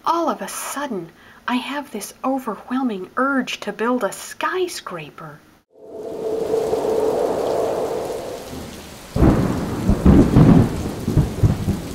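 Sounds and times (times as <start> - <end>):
rolling thunder: 5.8 - 11.9
steady rain: 5.8 - 11.9.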